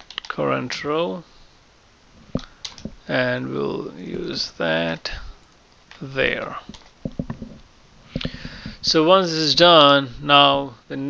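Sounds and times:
computer keyboard keystrokes: 0.0 - 0.3, 2.6 - 2.9, 6.7 - 7.5.

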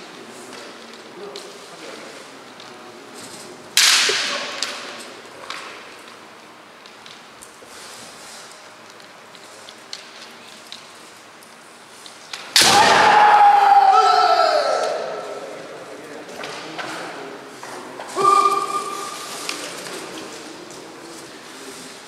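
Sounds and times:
bamboo sword strike: 12.6 - 13.3
person shouting: 12.8 - 15.2, 18.2 - 19.1.

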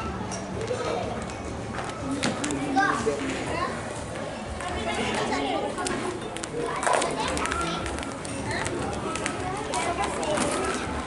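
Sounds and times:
chatter of many voices: 0.0 - 11.0
children's voices: 2.4 - 11.0.

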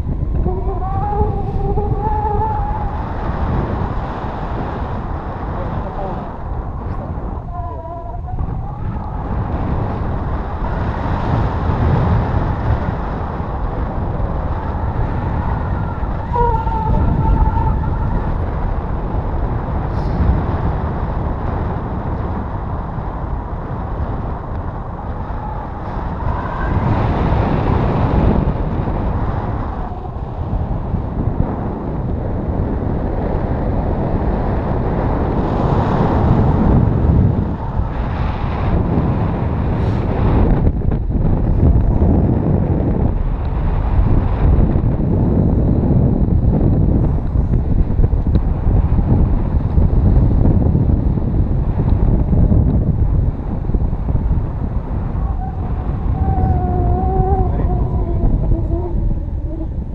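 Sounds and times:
wind roaring over microphone: 0.0 - 59.9.

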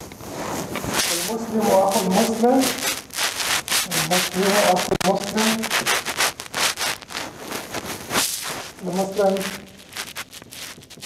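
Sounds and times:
marker scratching on whiteboard: 0.5 - 11.0.

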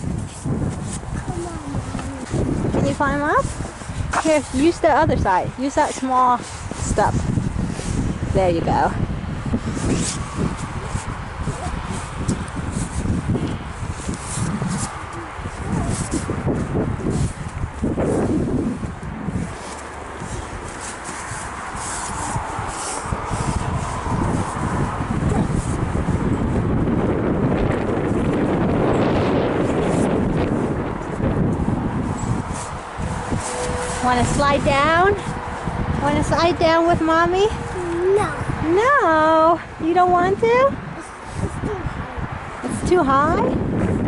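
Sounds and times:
wind rumbling on microphone: 0.0 - 44.0.

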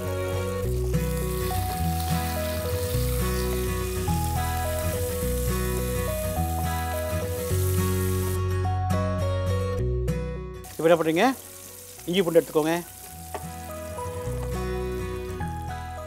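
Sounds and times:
onions sizzling in hot oil: 0.0 - 8.4, 10.6 - 16.0
background music: 0.0 - 16.0.

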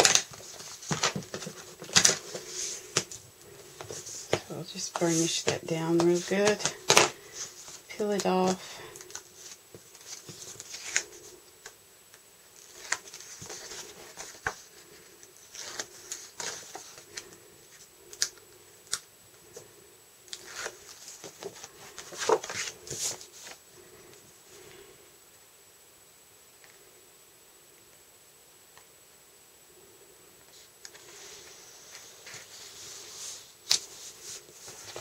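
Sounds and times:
paper rustling and crinkling: 0.0 - 11.4, 12.6 - 19.6, 20.3 - 24.0, 30.6 - 35.0.

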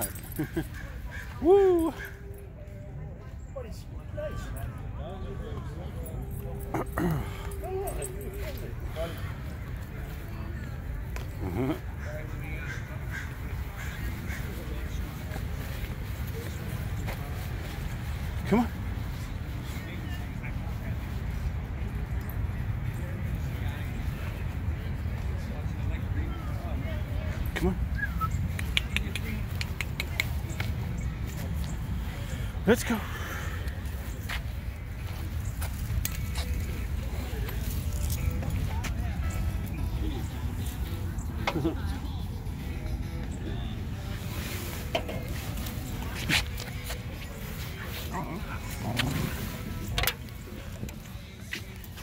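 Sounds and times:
indistinct voices: 27.3 - 52.0.

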